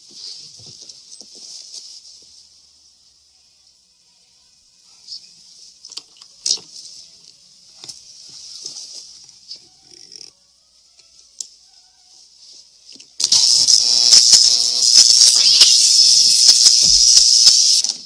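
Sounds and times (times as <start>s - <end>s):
faint hiss: 0.0s - 18.0s
small clicks: 12.9s - 18.0s
electrical shorting buzzing sizzle: 13.2s - 18.0s.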